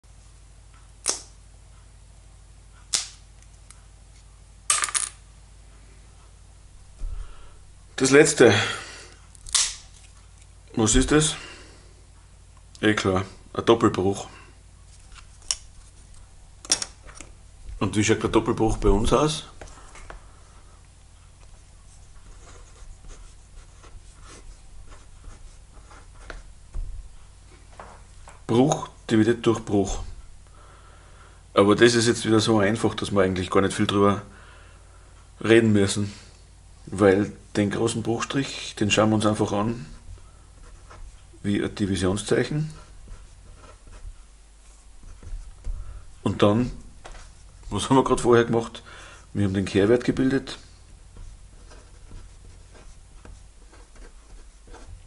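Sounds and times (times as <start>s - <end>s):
steady low hum: 0.0s - 55.0s
pen scratching on paper: 21.8s - 26.4s, 42.7s - 45.7s, 51.1s - 55.0s.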